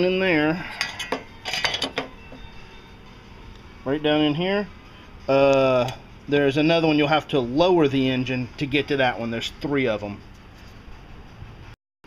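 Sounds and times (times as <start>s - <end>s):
metal tools clinking and rattling: 0.6s - 2.2s.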